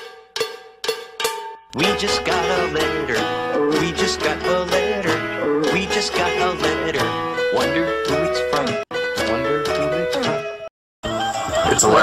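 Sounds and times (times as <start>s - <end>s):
struck ringing notes: 0.0s - 3.7s
person singing: 1.8s - 10.5s.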